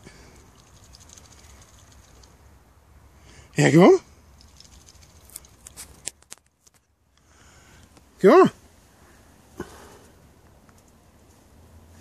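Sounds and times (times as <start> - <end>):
faint clicks and ticks: 0.4 - 2.4, 4.4 - 8.1.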